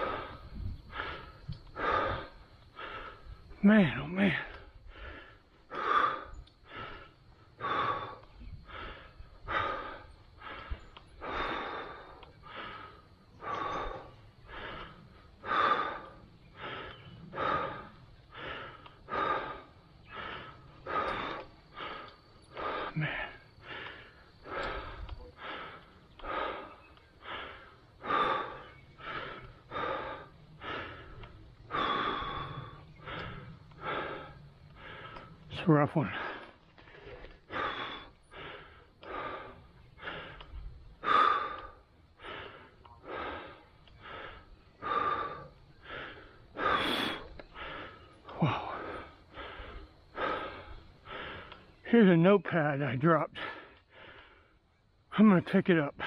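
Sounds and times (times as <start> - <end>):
heavy rhythmic breathing: 0.0 - 56.0.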